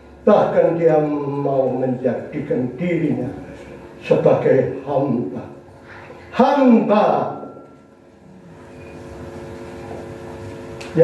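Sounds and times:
man speaking over amplification: 0.2s - 5.7s, 6.3s - 7.6s.

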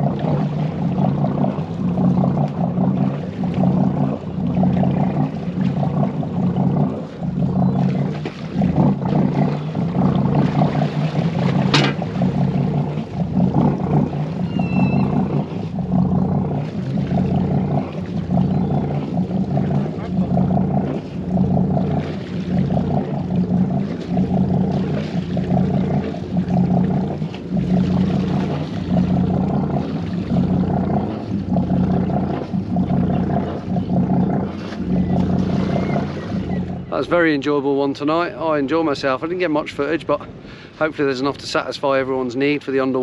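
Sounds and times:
boat engine running at low revs: 0.0s - 43.0s.

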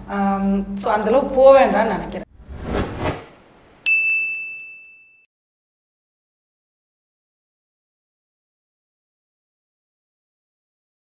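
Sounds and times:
whoosh: 2.3s - 3.9s
bright ringing ding: 3.8s - 5.3s.

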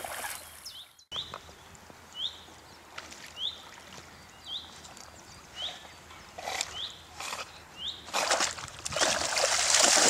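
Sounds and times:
water sloshing and splashing: 8.1s - 10.0s.

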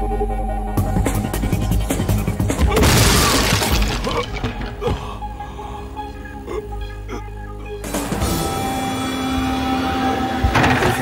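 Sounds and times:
wooden floorboards breaking: 2.6s - 5.0s.

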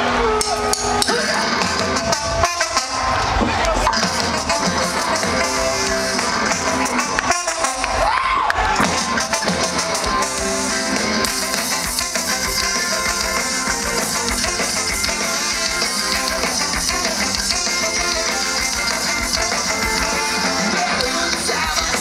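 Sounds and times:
drum kit: 0.0s - 22.0s
electric guitar: 0.0s - 22.0s
horn section: 0.0s - 22.0s
ska-punk band playing live: 0.0s - 22.0s.

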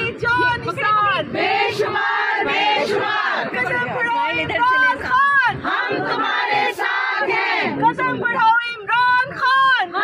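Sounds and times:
women chanting slogans: 0.0s - 10.0s.

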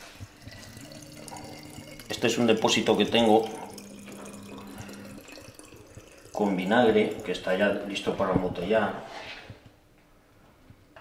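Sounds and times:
liquid trickling into bottle: 0.0s - 8.1s
low steady hum: 0.0s - 8.7s.

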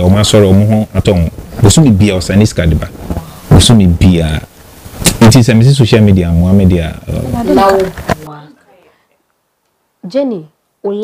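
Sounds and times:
man speaking: 0.0s - 4.5s, 5.1s - 8.0s.

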